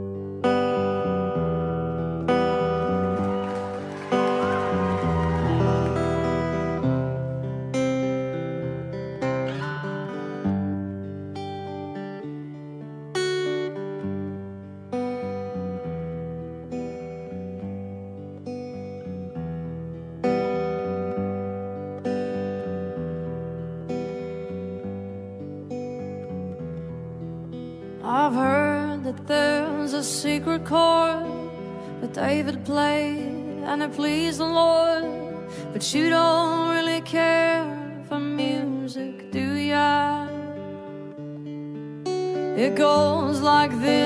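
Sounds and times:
acoustic guitar chords: 0.0 - 44.0.

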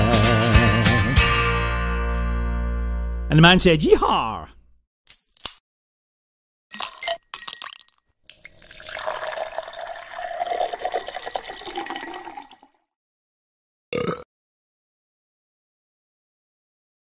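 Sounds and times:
ice clinking in glass: 6.7 - 12.7
liquid pouring into a glass: 7.6 - 12.8.

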